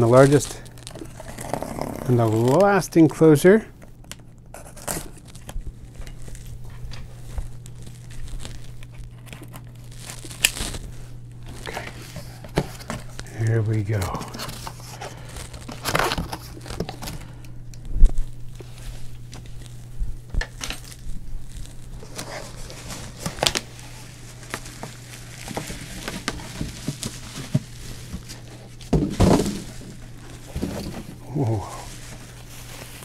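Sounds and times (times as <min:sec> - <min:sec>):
bubble wrap and cardboard crinkling: 0:00.0 - 0:33.0.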